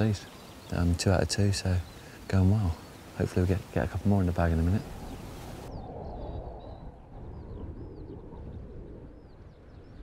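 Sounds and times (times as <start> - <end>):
faint birdsong: 0.0 - 10.0
low wind rumble: 0.0 - 10.0.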